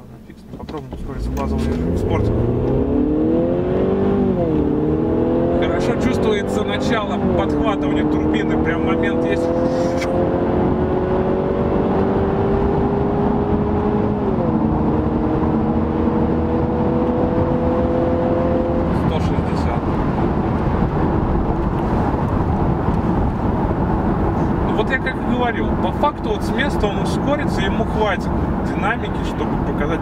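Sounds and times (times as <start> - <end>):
car engine accelerating: 0.0 - 30.0
tyre and road noise: 0.0 - 30.0.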